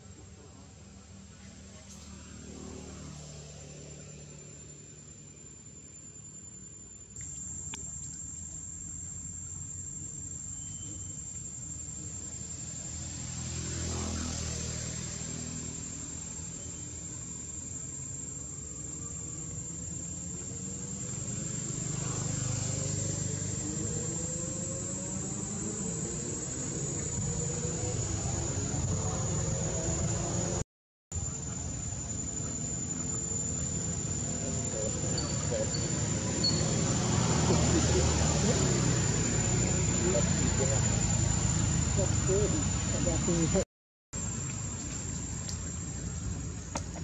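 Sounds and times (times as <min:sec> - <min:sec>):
high-pitched insect drone: 0:01.0 - 0:30.6, 0:31.2 - 0:47.0
passing traffic rumble: 0:12.0 - 0:17.7, 0:18.5 - 0:30.6, 0:31.2 - 0:43.6.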